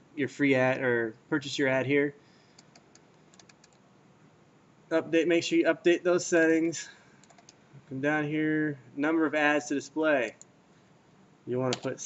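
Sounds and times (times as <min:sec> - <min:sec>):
low room hiss: 0:00.0 - 0:12.0
computer mouse clicks: 0:02.5 - 0:03.8, 0:07.2 - 0:07.6.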